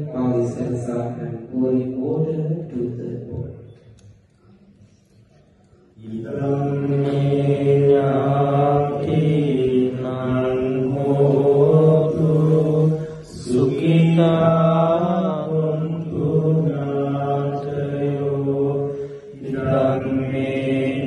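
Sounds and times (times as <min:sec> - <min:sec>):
monks chanting through microphone: 0:00.0 - 0:03.9, 0:04.6 - 0:21.0.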